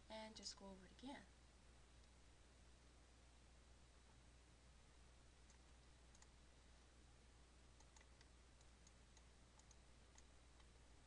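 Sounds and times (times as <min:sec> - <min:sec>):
low steady hum: 0:00.0 - 0:11.0
computer mouse clicks: 0:05.4 - 0:06.4, 0:07.8 - 0:10.7.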